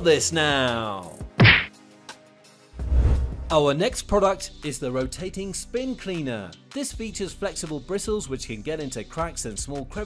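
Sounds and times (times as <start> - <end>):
faint background music: 0.0 - 2.8, 3.5 - 10.0
sharp whack: 1.4 - 1.7
low whoosh: 2.8 - 3.6.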